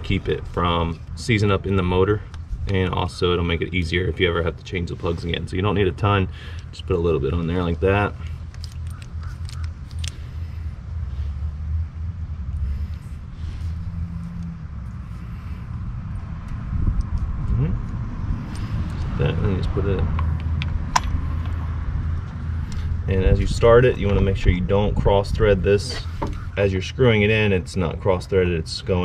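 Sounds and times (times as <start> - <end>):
steady low rumble: 0.0 - 29.0.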